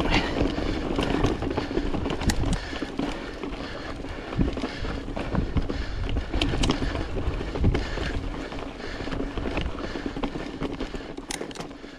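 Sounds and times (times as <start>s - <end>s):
bike knocking and rattling: 0.0s - 11.9s
bike tyres rolling over loose stones: 0.0s - 11.9s.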